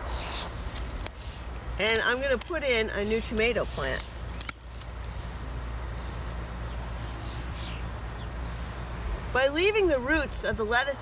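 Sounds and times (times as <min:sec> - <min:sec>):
high falling bird chirp: 0:00.0 - 0:09.3.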